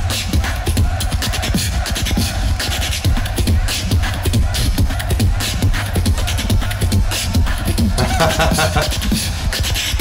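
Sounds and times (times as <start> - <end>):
beatboxing through microphone: 1.4 - 10.0.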